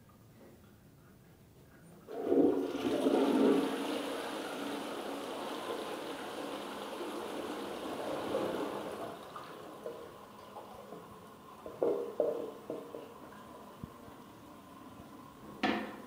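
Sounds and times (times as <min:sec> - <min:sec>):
toilet flushing: 0:02.1 - 0:16.0.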